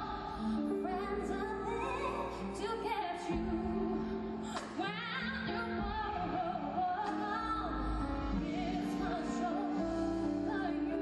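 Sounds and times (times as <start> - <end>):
keyboard and band accompaniment: 0.0 - 11.0
woman singing with vibrato: 0.0 - 11.0.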